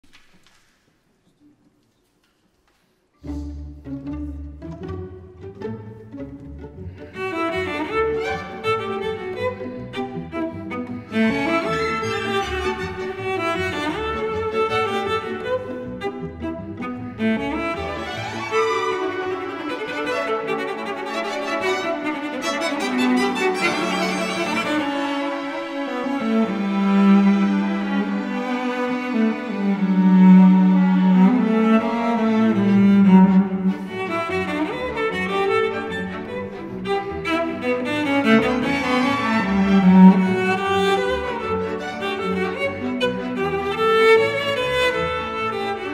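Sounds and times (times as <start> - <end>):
cellos bowing low notes: 3.2 - 45.9
string orchestra: 3.2 - 45.9
higher strings playing: 15.1 - 25.5.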